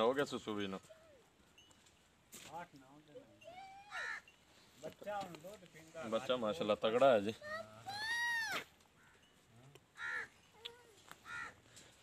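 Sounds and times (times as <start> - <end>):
crow cawing: 3.9 - 4.3, 9.0 - 9.3, 10.0 - 10.4, 11.2 - 11.6.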